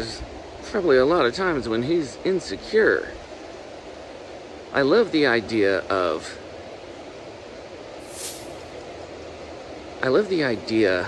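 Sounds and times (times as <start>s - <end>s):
short hiss: 8.0s - 8.7s.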